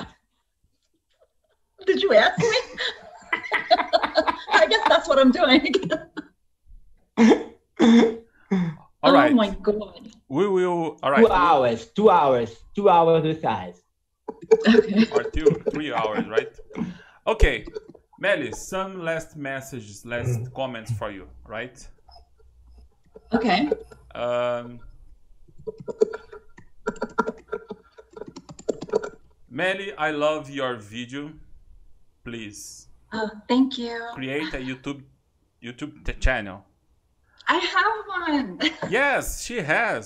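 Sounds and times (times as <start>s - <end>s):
short vocal sounds: 20.2s - 21.2s
typing on computer keyboard: 25.6s - 29.1s.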